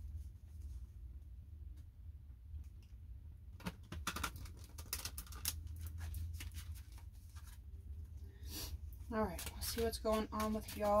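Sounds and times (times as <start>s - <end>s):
cards being shuffled: 3.6s - 7.7s, 9.1s - 11.0s.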